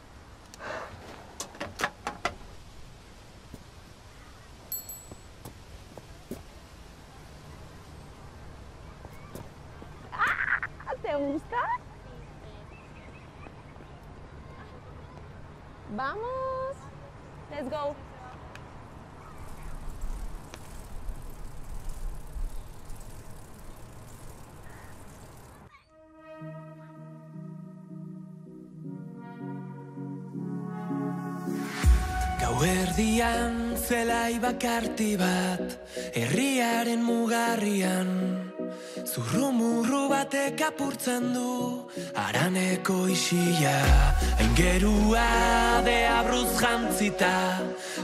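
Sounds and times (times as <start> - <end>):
bicycle bell ringing: 4.7 - 5.4
bicycle tyres rushing: 19.0 - 25.8.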